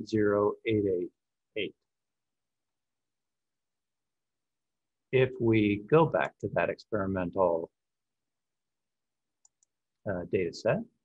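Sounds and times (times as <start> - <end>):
faint computer mouse clicks: 9.4 - 9.8.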